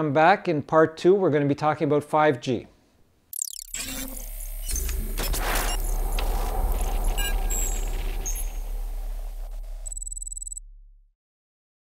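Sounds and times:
glitchy clicks and ticks: 0:03.3 - 0:10.6
high ringing tone: 0:03.4 - 0:10.8
deep bass rumble: 0:04.1 - 0:11.1.

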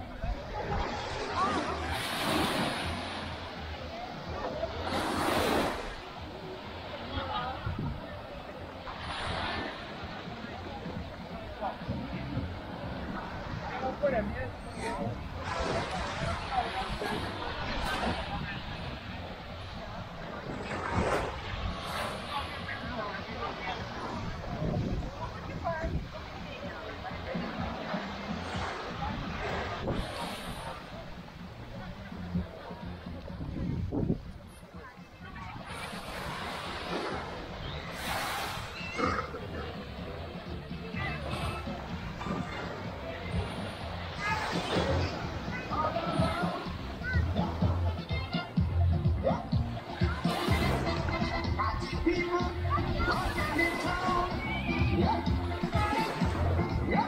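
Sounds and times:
babble of voices: 0:00.0 - 0:57.0
people chattering: 0:00.0 - 0:57.0
small waves washing on sand: 0:00.3 - 0:31.6, 0:35.2 - 0:46.8, 0:49.8 - 0:52.0.

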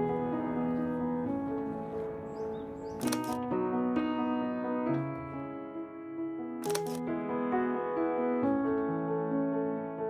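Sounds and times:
keyboard chords music: 0:00.0 - 0:10.0
camera shutter click: 0:03.0 - 0:03.4, 0:06.6 - 0:07.0.

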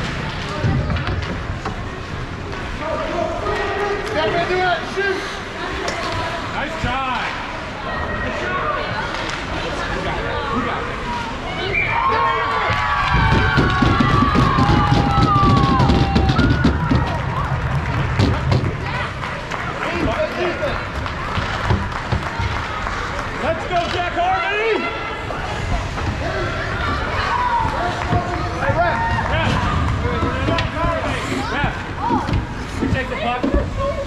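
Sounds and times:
crowd shouting and squealing: 0:07.7 - 0:20.6, 0:21.2 - 0:33.4
loud rapid banging: 0:12.7 - 0:19.0.

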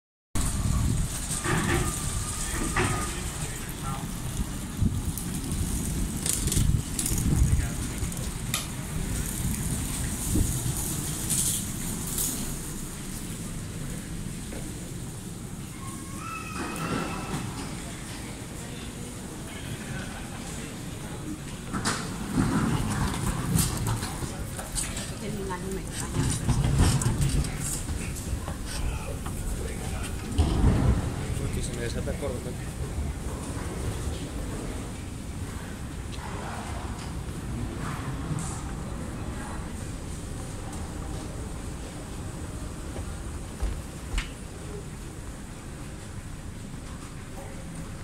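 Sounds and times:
luggage rolling on stone floor: 0:00.4 - 0:48.0
people's voices: 0:00.8 - 0:10.5, 0:13.7 - 0:43.8
footsteps on stone floor: 0:42.9 - 0:44.4.

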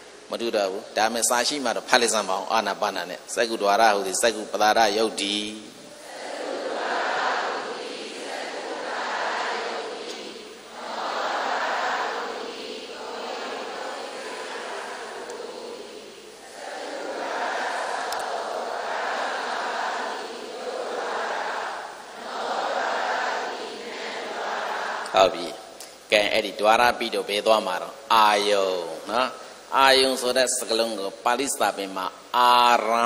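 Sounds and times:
group reciting in unison: 0:00.4 - 0:33.0.

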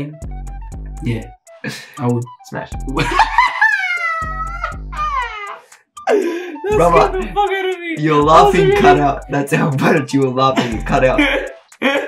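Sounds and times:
background music with bass line: 0:00.0 - 0:03.6, 0:04.2 - 0:12.0
man's high-pitched laughter: 0:03.0 - 0:07.2.

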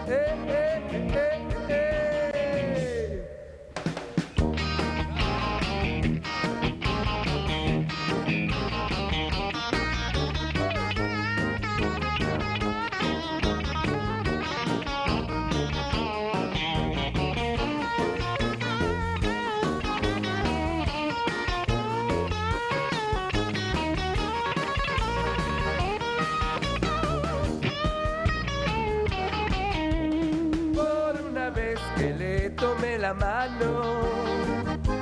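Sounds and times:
drum beat: 0:03.7 - 0:33.4
low bass line: 0:04.4 - 0:21.0, 0:21.6 - 0:35.0
electric guitar solo: 0:04.4 - 0:30.8.

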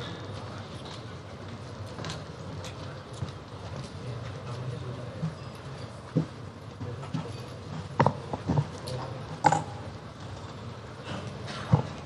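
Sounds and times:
murmur of seated audience: 0:00.0 - 0:12.0.

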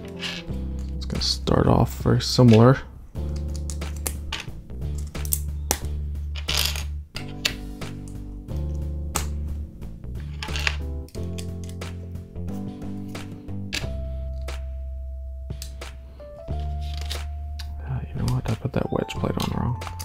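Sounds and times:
music with steady bass line: 0:03.2 - 0:20.0.

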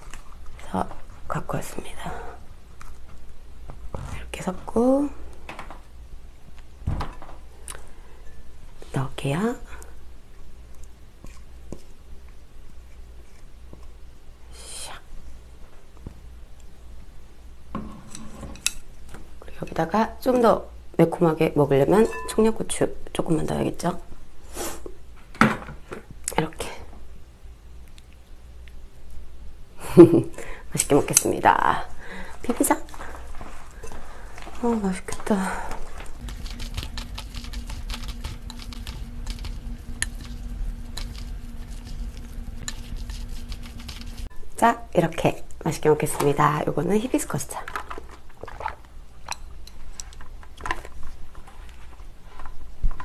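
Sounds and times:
bowl knocked and ringing: 0:22.0 - 0:22.4
tableware clink: 0:22.0 - 0:22.5
wet sticky noodle mixing: 0:32.5 - 0:44.7.

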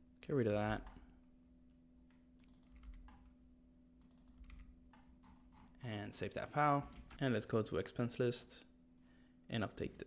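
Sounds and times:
low steady hum: 0:00.0 - 0:10.0
computer keyboard keystrokes: 0:02.4 - 0:03.3, 0:04.0 - 0:05.7.

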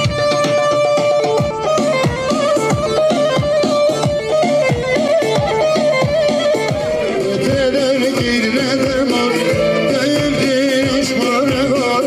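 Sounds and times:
live folk dance band: 0:00.0 - 0:12.0
ornamented lead melody: 0:00.0 - 0:12.0.

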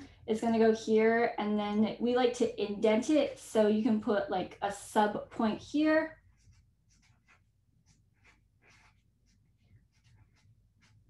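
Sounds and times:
pen scratching on paper: 0:06.1 - 0:11.0.

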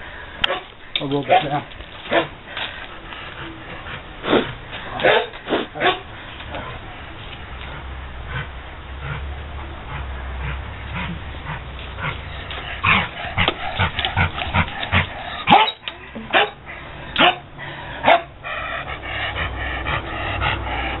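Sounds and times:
dog barking: 0:00.5 - 0:00.7, 0:02.1 - 0:02.4, 0:05.0 - 0:06.1, 0:15.4 - 0:16.6, 0:17.2 - 0:18.3.

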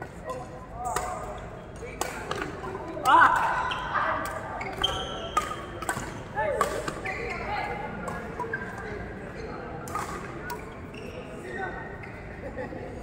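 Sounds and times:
shoes squeaking on court: 0:03.6 - 0:06.2, 0:06.9 - 0:12.4
racket hitting shuttlecock: 0:04.2 - 0:07.1.

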